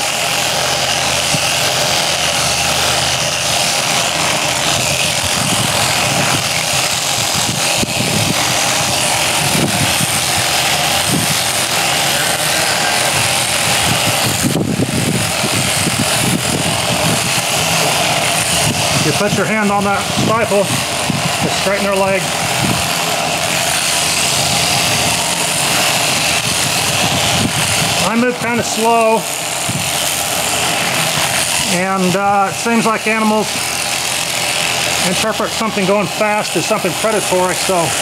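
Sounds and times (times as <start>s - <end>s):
electric shears clipping fleece: 0.0s - 38.0s.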